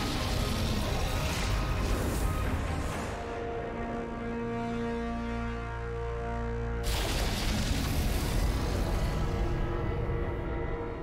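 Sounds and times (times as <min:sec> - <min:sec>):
dramatic film score low tones: 0:00.0 - 0:11.0.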